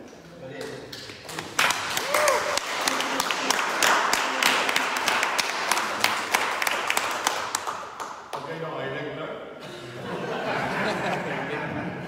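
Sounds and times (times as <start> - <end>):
audience applauding: 0.9 - 8.4.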